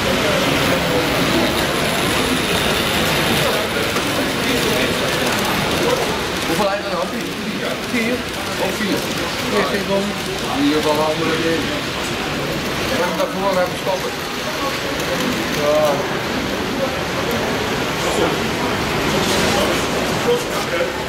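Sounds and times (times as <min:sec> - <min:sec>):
people talking indistinctly: 0:00.0 - 0:21.0.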